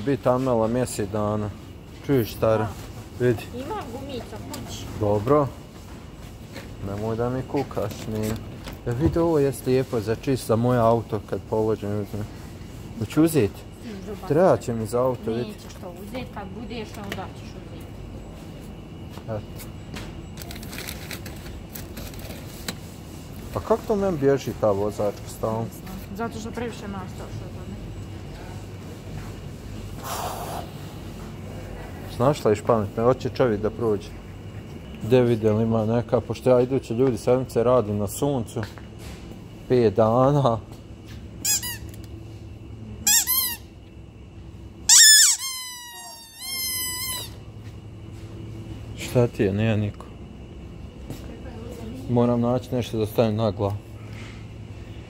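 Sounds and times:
packaged goods rustling and clicking: 0:20.2 - 0:23.7
squeaky shopping trolley wheel: 0:20.4 - 0:22.7, 0:41.4 - 0:42.0, 0:43.1 - 0:43.6, 0:44.9 - 0:47.4.

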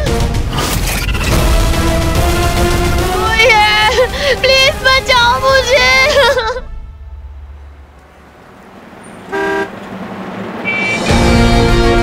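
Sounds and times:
street traffic noise: 0:02.8 - 0:12.0
vehicle horn toot: 0:09.3 - 0:09.8, 0:10.6 - 0:11.5.

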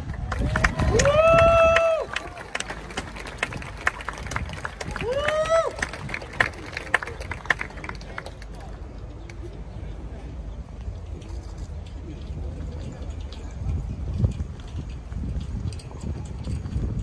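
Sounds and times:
small crowd clapping: 0:00.0 - 0:09.4
high shouted cheers: 0:00.1 - 0:03.5, 0:04.8 - 0:07.0.

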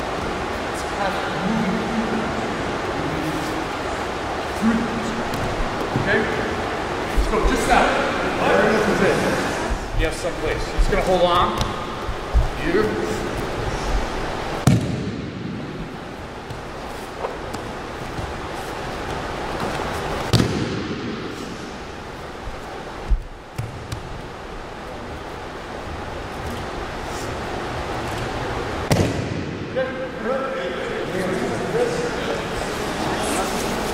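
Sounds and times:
large gym background noise: 0:00.0 - 0:33.9.

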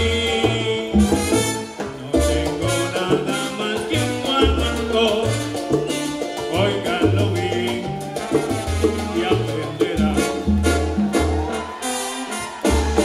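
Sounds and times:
man singing: 0:00.0 - 0:05.5, 0:06.5 - 0:08.0, 0:09.0 - 0:10.5
bass line: 0:00.0 - 0:11.7
live salsa band playing: 0:00.0 - 0:13.0
trombones: 0:00.0 - 0:13.0.

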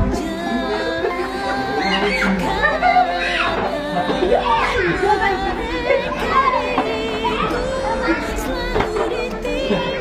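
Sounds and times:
adults and children chattering: 0:00.0 - 0:10.0
music: 0:00.0 - 0:10.0.

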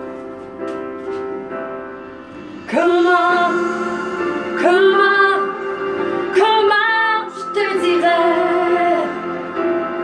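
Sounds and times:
woman singing a ballad: 0:02.6 - 0:09.6.

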